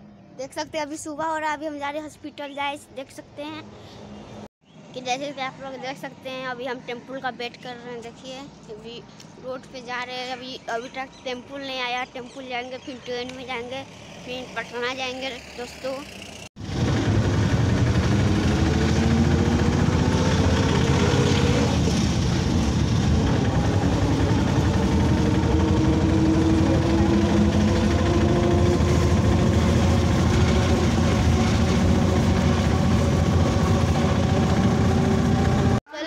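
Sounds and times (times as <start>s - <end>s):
road noise: 0.0s - 35.9s
auto-rickshaw engine running: 9.5s - 35.8s.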